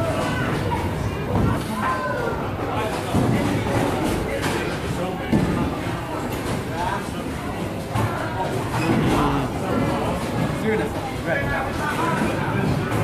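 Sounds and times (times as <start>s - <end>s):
clatter of bowling balls and pins: 0.0s - 13.0s
indistinct talk: 0.0s - 13.0s.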